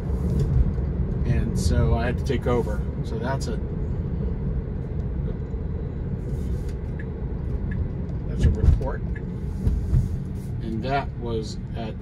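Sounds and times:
tyre and road noise in car cabin: 0.0s - 12.0s.

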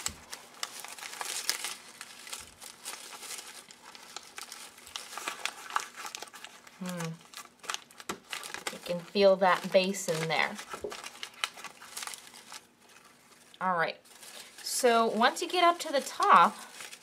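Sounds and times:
paper crinkling: 0.0s - 17.0s.

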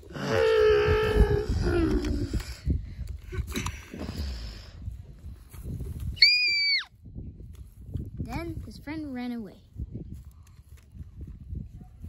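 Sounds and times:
child's high-pitched squeal: 6.2s - 6.9s.

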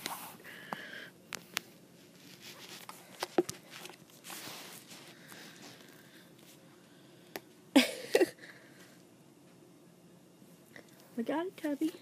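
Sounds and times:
rustling and handling noise: 0.0s - 7.6s, 10.3s - 12.0s.

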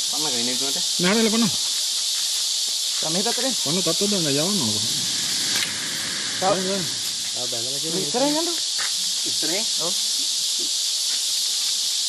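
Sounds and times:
insect chorus: 0.0s - 12.0s
people talking: 3.0s - 4.9s, 6.4s - 8.6s.

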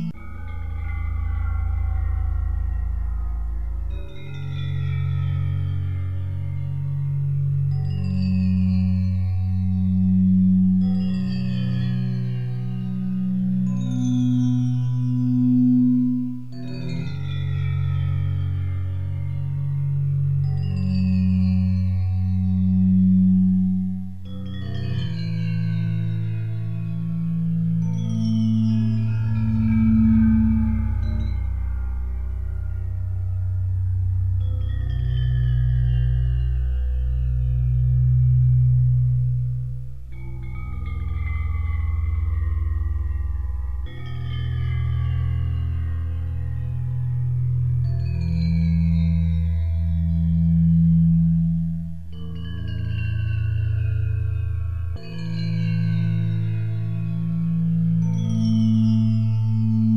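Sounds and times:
high gliding bell-like tones: 0.0s - 59.9s
low drone tones: 0.0s - 59.9s.

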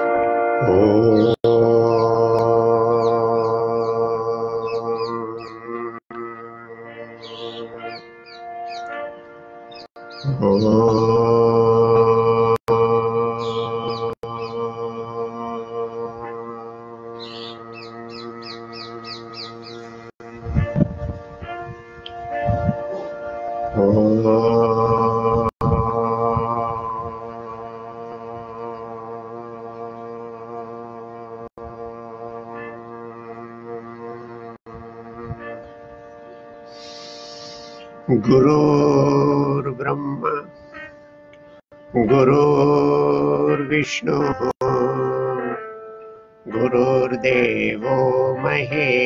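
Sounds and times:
man chanting a low note: 0.6s - 8.0s, 10.3s - 21.2s, 23.7s - 36.4s, 38.0s - 40.6s, 41.9s - 45.6s, 46.5s - 49.0s
small birds chirping: 1.1s - 5.8s, 7.0s - 9.0s, 9.7s - 11.3s, 13.4s - 14.8s, 17.1s - 20.1s, 36.6s - 38.0s
man chanting a held note: 15.8s - 20.9s, 26.3s - 36.0s, 36.9s - 40.6s, 42.0s - 44.6s.

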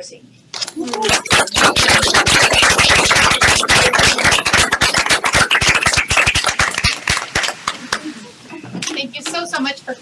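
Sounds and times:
audience applauding: 0.8s - 8.2s.

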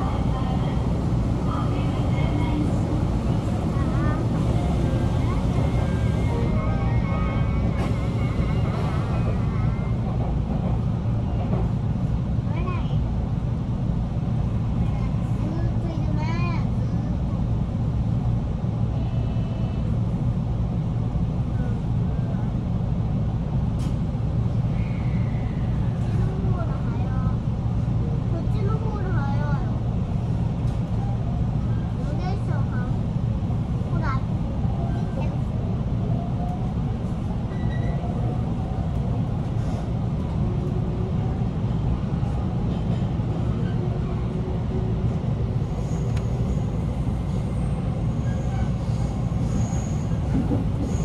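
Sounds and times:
electric train rumbling: 0.0s - 51.0s.

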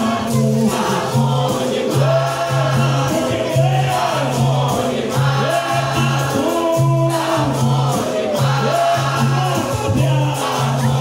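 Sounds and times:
group chorus singing: 0.0s - 11.0s
hand percussion beat: 0.0s - 11.0s.

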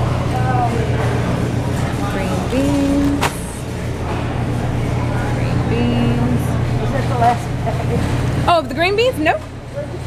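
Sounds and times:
refrigerator and ventilation hum: 0.0s - 10.0s.

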